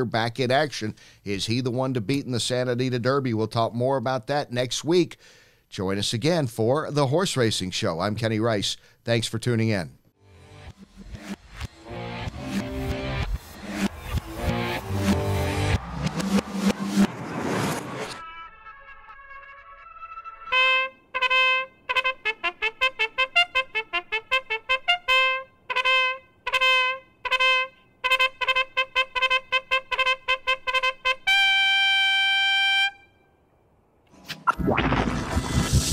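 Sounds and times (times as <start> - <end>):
rising rush of noise: 10.3 - 18.6, 34.1 - 35.9
trumpet holding long note: 20.4 - 33.2.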